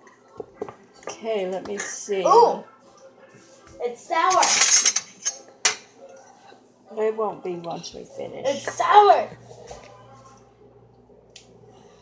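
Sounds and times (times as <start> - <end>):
steady low hum: 6.3 - 12.0.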